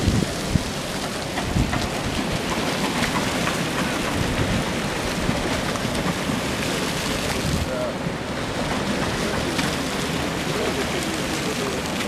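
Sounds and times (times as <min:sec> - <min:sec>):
river water lapping and splashing: 0:00.0 - 0:12.0
wind buffeting microphone: 0:00.0 - 0:12.0.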